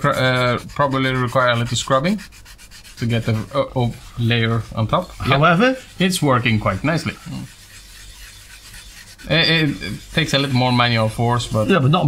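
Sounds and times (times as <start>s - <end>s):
sponge scrubbing circuit board: 0.0s - 12.0s.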